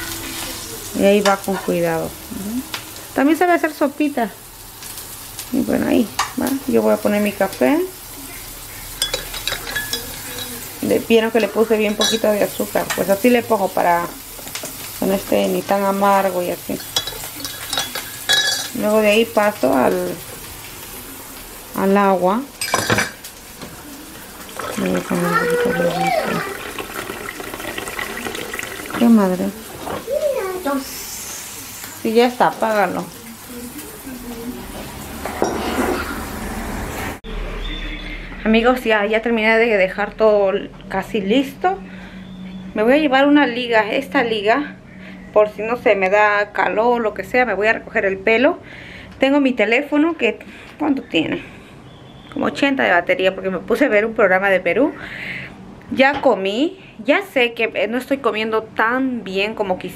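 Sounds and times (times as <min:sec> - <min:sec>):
metal spoon clinking in a mug: 0:09.0 - 0:10.6, 0:16.8 - 0:18.8
dishes and utensils clattering: 0:09.0 - 0:10.7, 0:11.5 - 0:13.1, 0:16.7 - 0:18.8, 0:22.6 - 0:23.8, 0:35.2 - 0:36.2.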